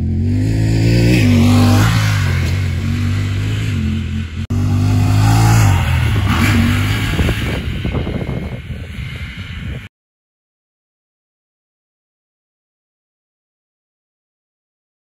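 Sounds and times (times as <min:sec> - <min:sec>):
engine revving hard: 0:00.0 - 0:08.4.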